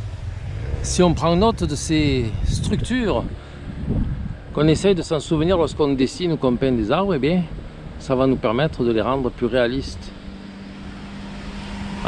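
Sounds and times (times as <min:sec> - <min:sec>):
distant engine drone: 0:00.0 - 0:12.0.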